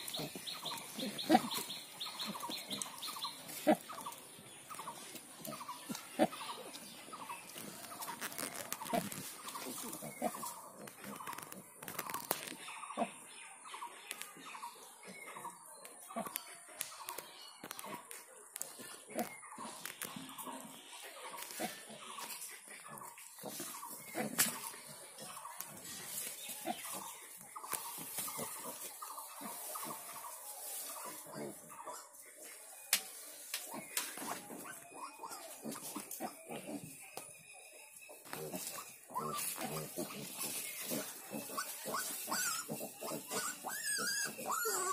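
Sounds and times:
sow grunting: 0:00.0 - 0:02.5, 0:03.5 - 0:04.2, 0:38.4 - 0:44.9
piglets crying: 0:34.6 - 0:36.9, 0:38.5 - 0:44.9.

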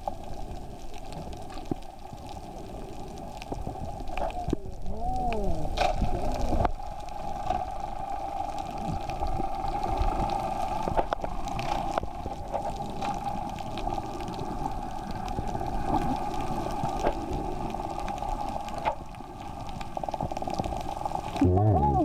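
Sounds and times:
faint clicks: 0:00.0 - 0:21.4
low underwater rumble: 0:00.0 - 0:22.0
underwater mid-pitched hum: 0:00.0 - 0:22.0.

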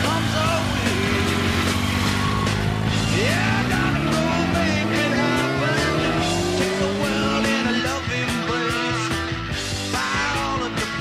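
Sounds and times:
motorcycle engine running: 0:00.0 - 0:09.3
rock song: 0:00.0 - 0:11.0.

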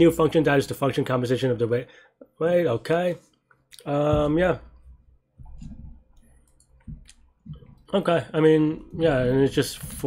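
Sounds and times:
keyboard and mouse clicks: 0:05.4 - 0:07.9.

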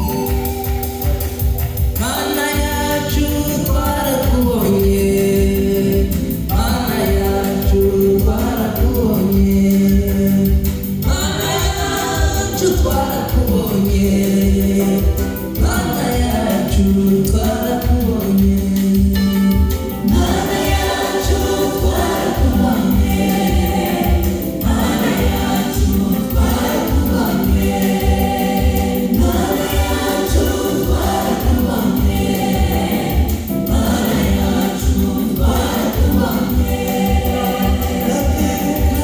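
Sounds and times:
choir singing gospel song: 0:00.0 - 0:39.0
steady bass beat: 0:00.0 - 0:39.0.

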